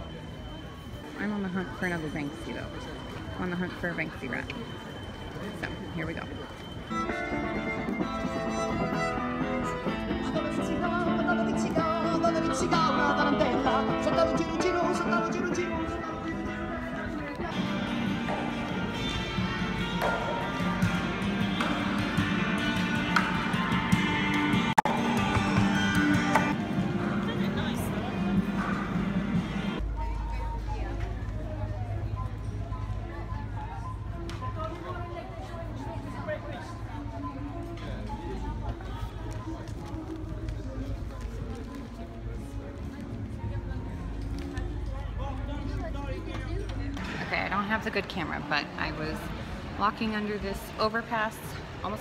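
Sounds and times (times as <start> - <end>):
people chatting: 0.0 - 6.5, 29.8 - 52.0.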